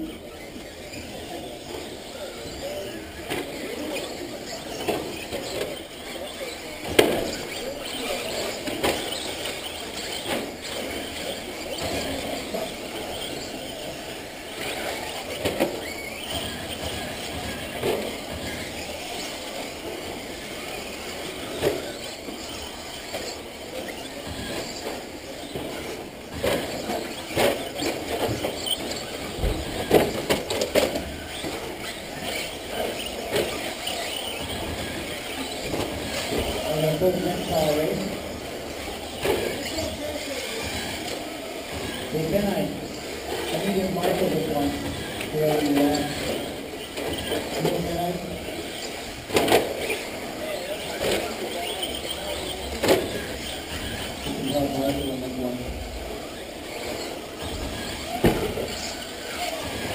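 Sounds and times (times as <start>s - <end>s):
small motors and tyres: 0.0s - 59.9s.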